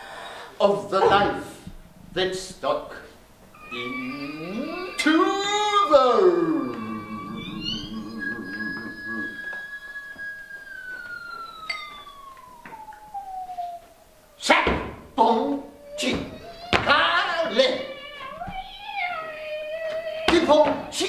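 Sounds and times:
faint steady tone: 0:03.5 - 0:14.5
falling vocal cry: 0:03.6 - 0:13.8, 0:15.6 - 0:21.0
high tone sliding down: 0:03.6 - 0:14.4.

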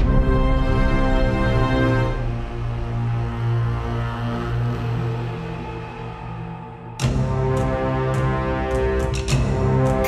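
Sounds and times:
orchestral film music: 0:00.0 - 0:10.0.

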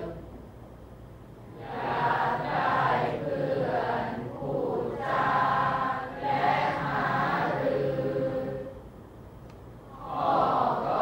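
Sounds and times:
group of voices chanting verse: 0:01.6 - 0:08.8, 0:09.9 - 0:11.0.

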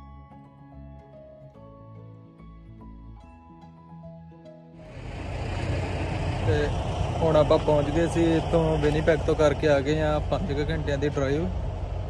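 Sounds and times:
soft background music: 0:00.0 - 0:04.9
outdoor rumble with hiss: 0:04.8 - 0:12.0
man talking: 0:06.4 - 0:11.6.

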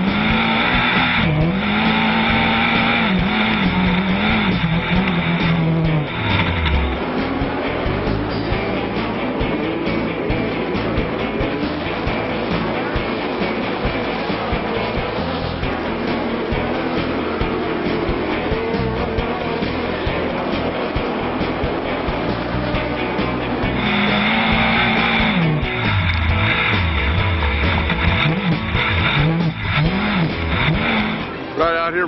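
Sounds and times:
music: 0:00.0 - 0:32.0
race trucks racing: 0:00.0 - 0:32.0
truck engine revving: 0:00.0 - 0:32.0.

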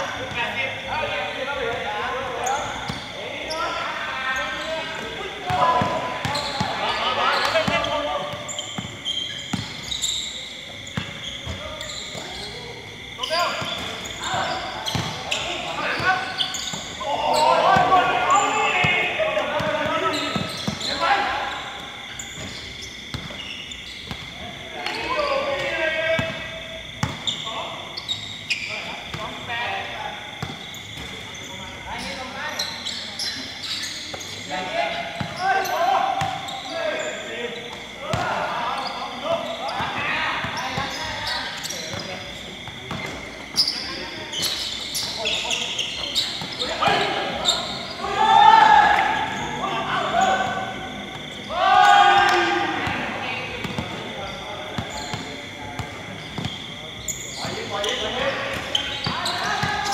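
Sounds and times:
players shouting: 0:00.0 - 0:08.7, 0:09.4 - 0:23.8, 0:34.5 - 0:41.8, 0:45.2 - 0:55.2, 0:56.4 - 0:59.9
basketball bouncing on court: 0:07.5 - 0:09.8, 0:13.6 - 0:15.2, 0:22.3 - 0:23.4, 0:27.0 - 0:27.4.

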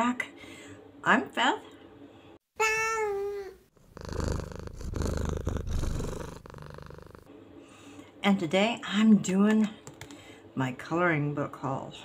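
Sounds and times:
cat purring: 0:03.8 - 0:07.3.

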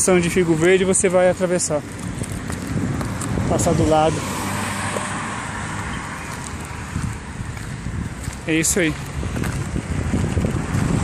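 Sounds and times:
car passing on road: 0:00.0 - 0:11.0
wind rumble on microphone: 0:00.0 - 0:11.0.

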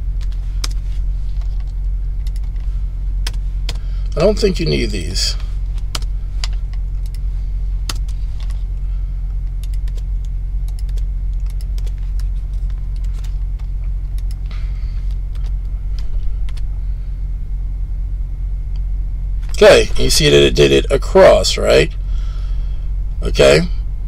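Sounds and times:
steady low hum: 0:00.0 - 0:24.0
keyboard typing: 0:01.4 - 0:02.6, 0:07.9 - 0:08.2, 0:09.6 - 0:14.5.

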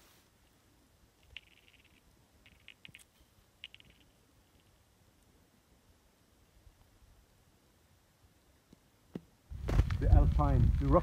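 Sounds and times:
faint rapid clicking: 0:01.2 - 0:05.3.

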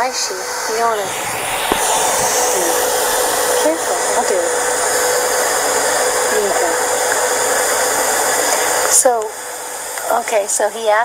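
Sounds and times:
faint hum tone: 0:00.0 - 0:11.0
loud steady hiss: 0:00.0 - 0:11.0.

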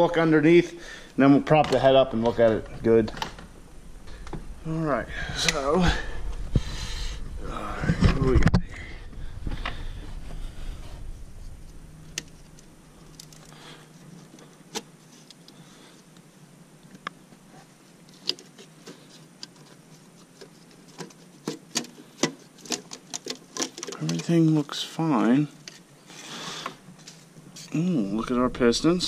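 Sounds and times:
hands handling metal gasket: 0:18.0 - 0:24.5.

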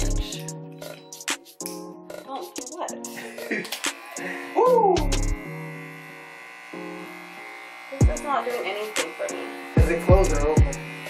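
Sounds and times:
background music: 0:00.0 - 0:11.0
electric hair clippers buzzing: 0:03.0 - 0:11.0.

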